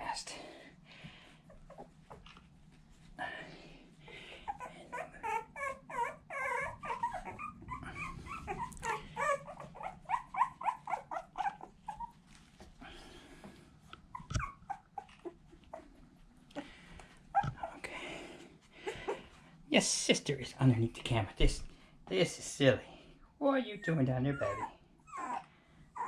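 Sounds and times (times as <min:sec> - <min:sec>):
puppy whimpering and squealing: 0:04.4 - 0:12.3, 0:14.1 - 0:16.0, 0:17.3 - 0:17.8, 0:23.7 - 0:26.0.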